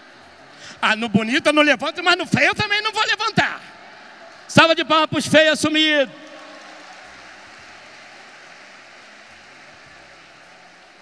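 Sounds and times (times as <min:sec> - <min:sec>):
audience applauding: 0:05.7 - 0:11.0.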